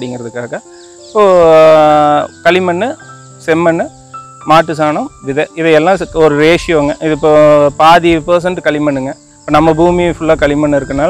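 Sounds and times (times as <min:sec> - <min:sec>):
man talking: 0:00.0 - 0:00.6, 0:01.2 - 0:11.0
crickets droning: 0:00.0 - 0:11.0.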